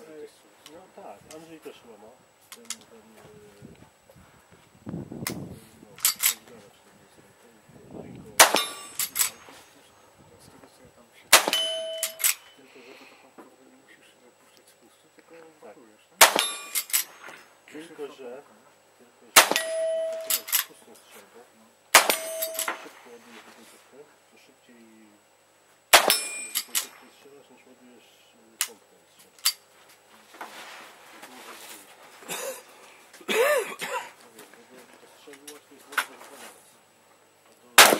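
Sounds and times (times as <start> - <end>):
rifle shot: 8.4 - 9.4, 11.3 - 12.3, 16.2 - 17.4, 19.4 - 20.5, 21.9 - 23.0, 25.9 - 27.0
sharp crack: 8.4 - 9.5, 11.3 - 12.4, 16.2 - 17.4, 19.4 - 20.7, 22.0 - 23.1, 25.9 - 27.1
steel target ringing: 8.4 - 9.6, 11.3 - 12.6, 16.2 - 17.3, 19.4 - 20.6, 22.0 - 23.0, 25.9 - 27.2.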